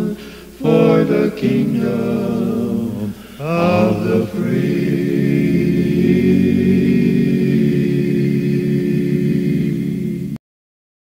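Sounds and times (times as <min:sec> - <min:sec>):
a cappella quartet singing harmony: 0:00.0 - 0:10.4.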